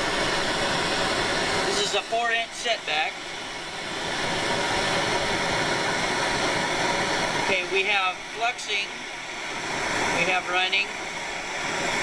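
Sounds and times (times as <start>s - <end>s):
gas torch hissing: 0.0s - 12.0s.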